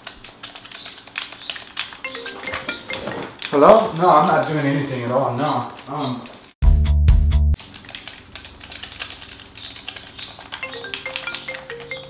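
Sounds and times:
game controller buttons clicking: 0.0 - 4.7, 7.6 - 12.0
phone ringtone melody: 2.0 - 3.5, 10.6 - 12.0.

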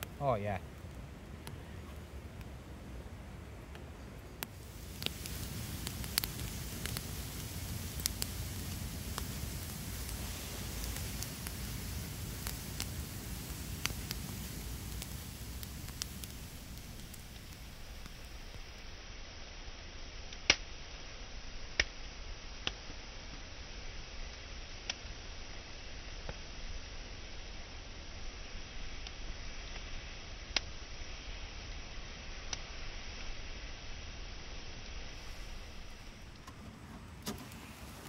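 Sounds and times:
fire burning with steady rush: 0.0 - 38.0
fire crackles and pops: 0.0 - 38.0.

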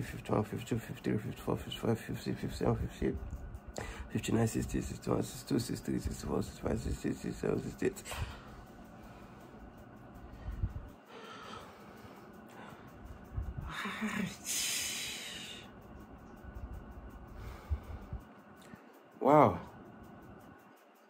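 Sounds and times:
man breathing hard: 3.7 - 4.1, 8.0 - 15.7, 17.3 - 18.8.

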